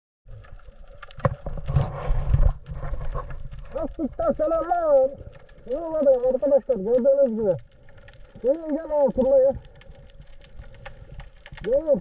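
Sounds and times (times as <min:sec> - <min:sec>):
underwater water rumbling: 0:00.3 - 0:12.0
underwater knocks: 0:01.1 - 0:03.6
man speaking: 0:03.8 - 0:07.6, 0:08.4 - 0:09.6, 0:11.6 - 0:12.0.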